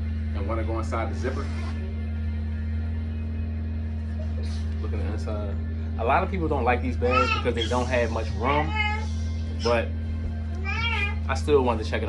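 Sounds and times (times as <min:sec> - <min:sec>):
background music with low tone: 0:00.0 - 0:12.0.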